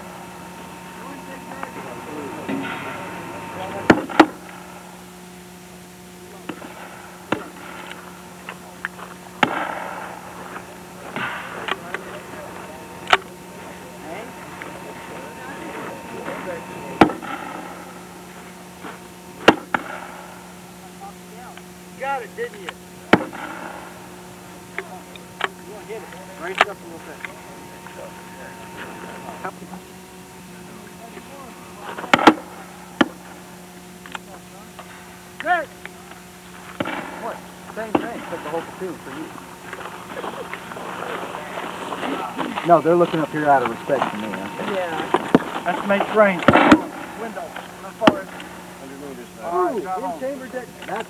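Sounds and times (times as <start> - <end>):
faint voices: 0.0 - 51.0.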